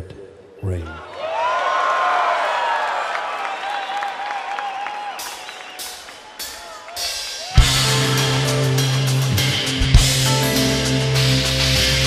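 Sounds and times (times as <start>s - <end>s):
crowd whooping and cheering: 0.9s - 8.6s
crowd clapping: 1.1s - 8.3s
whistles from crowd: 3.4s - 7.6s.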